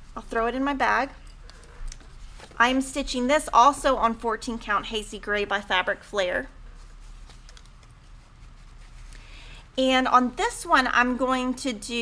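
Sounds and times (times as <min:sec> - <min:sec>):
low steady hum: 0:00.0 - 0:12.0
fabric and paper rustling: 0:01.4 - 0:03.1, 0:06.6 - 0:09.3.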